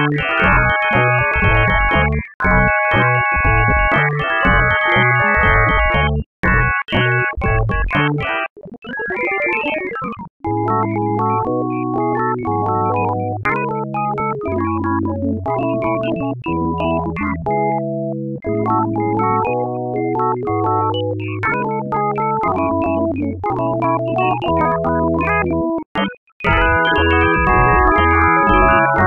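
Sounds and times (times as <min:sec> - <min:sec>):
synthesized keyboard notes: 0:00.0 - 0:29.0.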